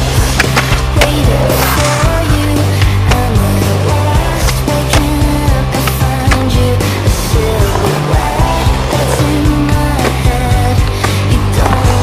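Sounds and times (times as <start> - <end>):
loud music: 0.0 - 12.0
skateboard rolling on pavement: 0.0 - 12.0
skateboard clacks: 0.3 - 3.4, 4.2 - 6.6.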